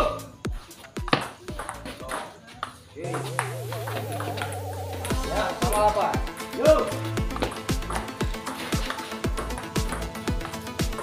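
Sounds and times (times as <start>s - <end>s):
music with sung melody: 3.1s - 11.0s.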